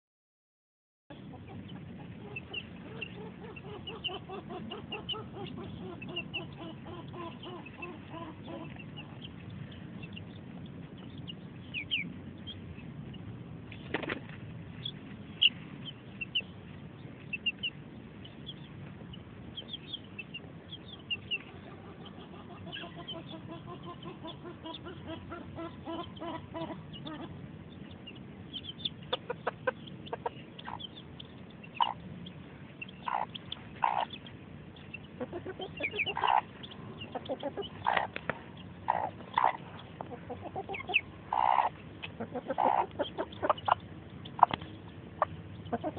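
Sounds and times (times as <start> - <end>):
hen clucking: 1.1 - 13.3, 14.8 - 45.9
chicks peeping: 1.1 - 45.9.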